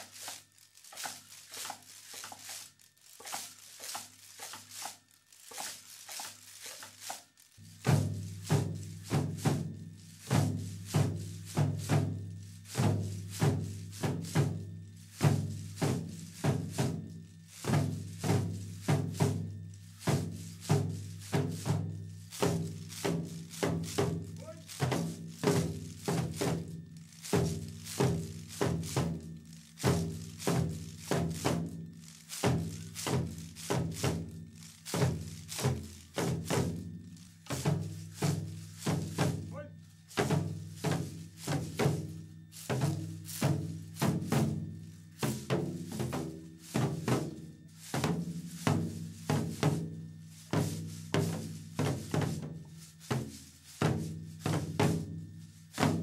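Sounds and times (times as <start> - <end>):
wooden clappers clacking: 0.0 - 9.4, 17.5 - 44.4
drums struck with sticks: 5.5 - 56.0.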